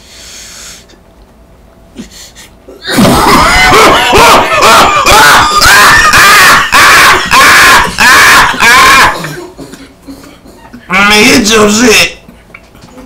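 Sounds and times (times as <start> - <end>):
man coughing hard: 3.8 - 10.0.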